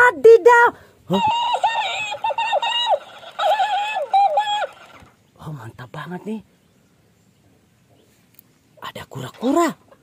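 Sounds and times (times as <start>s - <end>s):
toy high-pitched sped-up voice: 1.1s - 5.0s.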